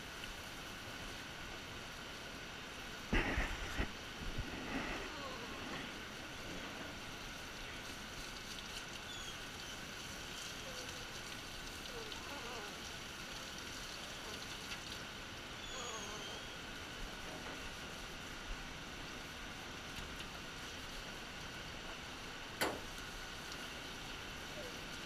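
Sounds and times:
water spraying: 0.0s - 25.0s
dog whining: 15.6s - 16.6s.

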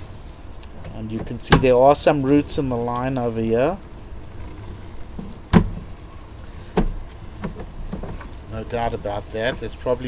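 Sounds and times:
steady low background noise: 0.0s - 10.0s.

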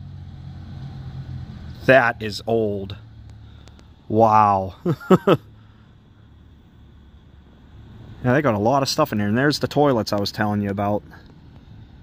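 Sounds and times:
low store hum: 1.8s - 12.0s.

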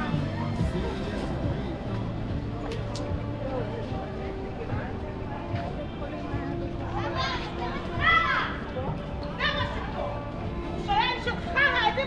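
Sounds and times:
faint music: 0.0s - 12.0s
street crowd chatter: 0.0s - 12.0s.

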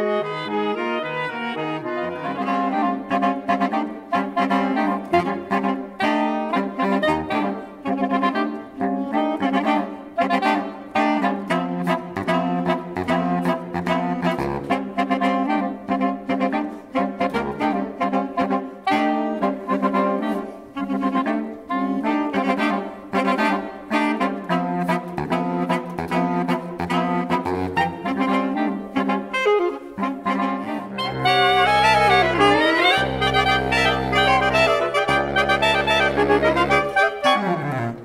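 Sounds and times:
saxophone quartet playing: 0.0s - 38.0s.

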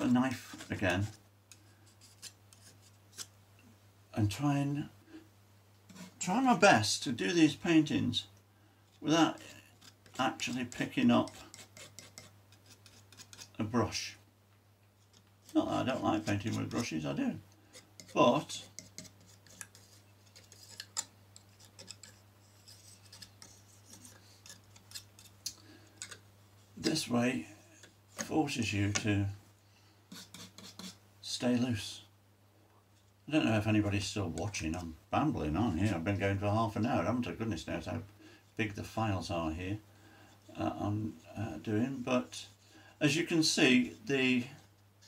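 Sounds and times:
palette knife scraping paint: 0.0s - 3.3s, 5.9s - 6.2s, 9.3s - 13.6s, 15.4s - 17.0s, 17.7s - 25.4s, 30.1s - 31.0s.

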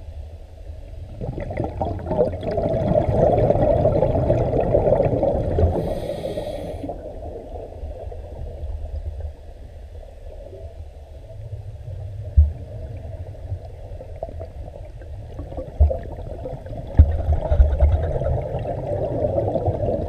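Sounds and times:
bubbles gurgling underwater: 1.0s - 6.1s, 11.9s - 20.0s
brief hiss: 5.8s - 6.9s.

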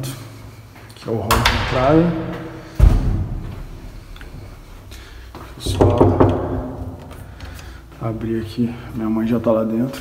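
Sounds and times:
dull heavy thump: 2.7s - 3.8s.

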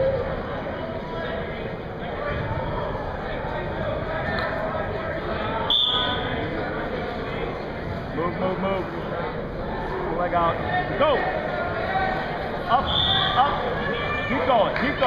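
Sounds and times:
spectators chattering: 0.0s - 15.0s
referee whistle blast: 5.7s - 6.3s, 12.8s - 13.4s.

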